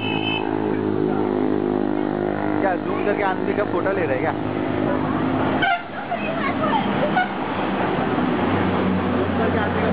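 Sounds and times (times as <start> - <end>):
traffic: 0.0 - 9.9
voices: 2.6 - 7.9.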